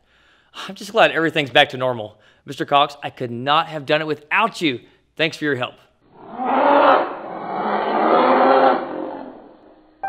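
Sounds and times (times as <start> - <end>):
growling dinosaur roar: 6.1 - 9.8.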